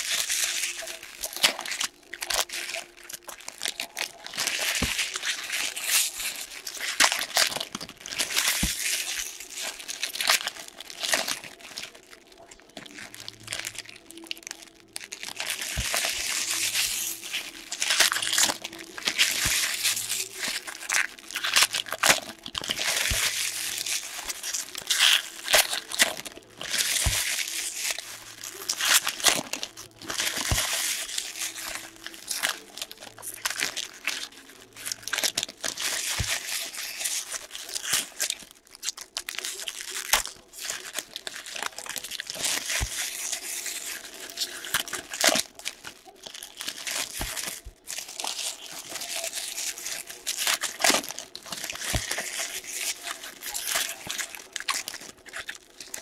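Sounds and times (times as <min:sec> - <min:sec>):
foil wrappers crinkling and tearing: 0:00.0 - 0:56.0.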